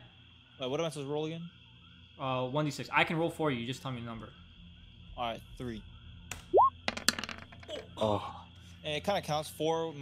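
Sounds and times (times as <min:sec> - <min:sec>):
rising electronic bloop: 0:06.5 - 0:06.8.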